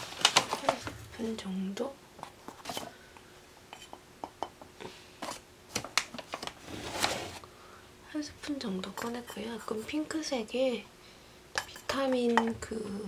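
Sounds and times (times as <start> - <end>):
plastic bag crinkling: 0.0 - 1.0
plastic scoop scraping powder: 6.6 - 7.4.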